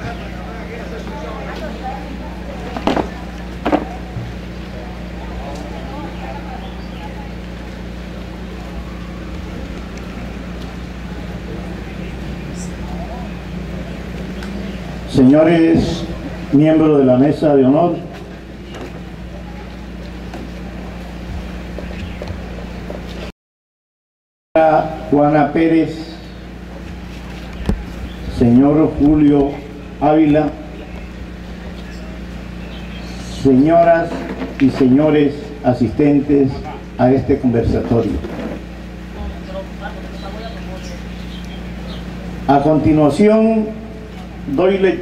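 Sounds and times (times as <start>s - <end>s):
faint low voices: 0.0s - 16.6s, 18.0s - 22.6s, 26.2s - 35.6s
electrical hum: 0.0s - 23.3s, 24.6s - 45.0s.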